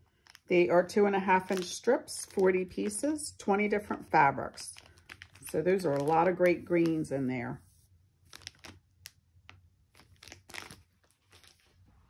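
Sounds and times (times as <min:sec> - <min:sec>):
plastic packaging crinkling: 0:00.0 - 0:00.5, 0:01.3 - 0:03.1, 0:04.4 - 0:07.2, 0:08.2 - 0:12.0.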